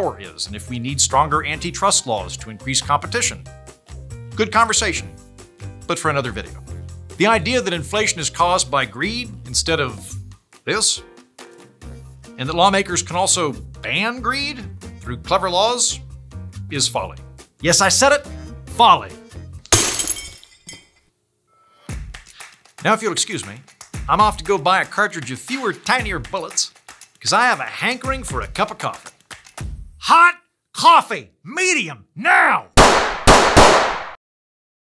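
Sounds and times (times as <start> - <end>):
quiet background music: 0.0 - 20.4, 22.8 - 29.2
glass shattering: 19.7 - 21.0.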